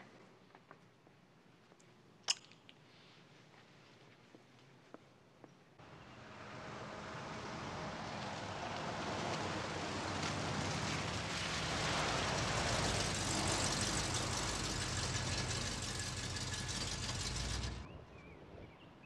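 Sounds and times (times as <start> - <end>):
tyre hiss on wet road: 6.7 - 14.8
car engine running: 10.2 - 17.9.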